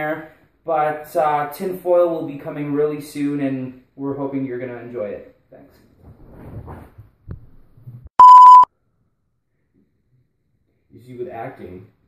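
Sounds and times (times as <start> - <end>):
electronic censor bleep: 8.2 - 8.7.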